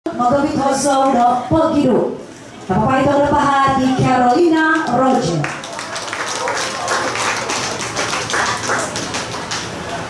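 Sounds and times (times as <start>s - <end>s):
audience applauding: 4.7s - 10.0s.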